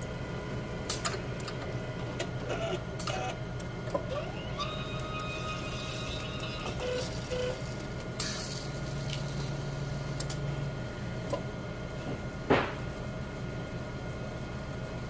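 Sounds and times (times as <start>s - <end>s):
steady machine hum: 0.0s - 15.0s
motors whirring and whining: 1.0s - 10.4s.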